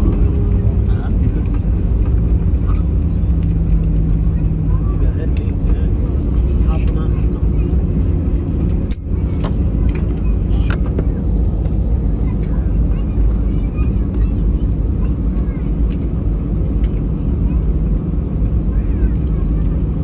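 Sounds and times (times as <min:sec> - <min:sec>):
airliner cabin low rumble: 0:00.0 - 0:20.0
light rattles and clicks: 0:00.0 - 0:20.0
steady hum: 0:00.0 - 0:20.0.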